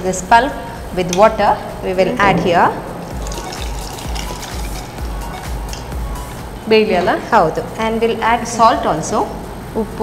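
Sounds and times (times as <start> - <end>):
background music: 0.0 - 10.0
liquid pouring into a pot: 3.0 - 5.3.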